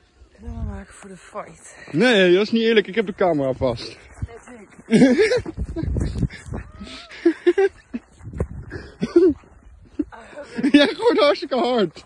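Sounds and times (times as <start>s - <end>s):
wind on microphone: 0.3s - 1.0s, 5.0s - 10.1s.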